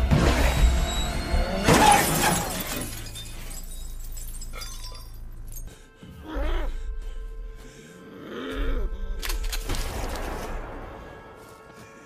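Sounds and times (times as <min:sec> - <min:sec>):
film score: 0:00.0 - 0:03.0, 0:05.0 - 0:12.0.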